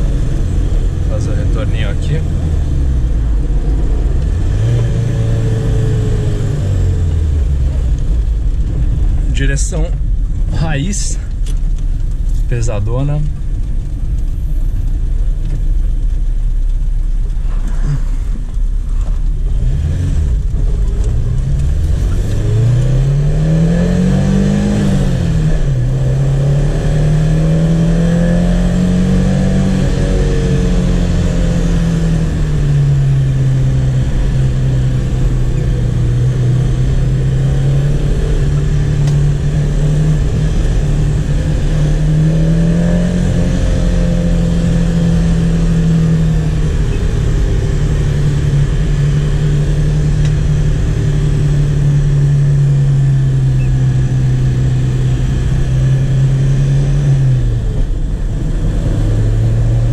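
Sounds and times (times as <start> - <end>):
car engine revving from inside: 0.0 - 9.8, 17.4 - 59.9.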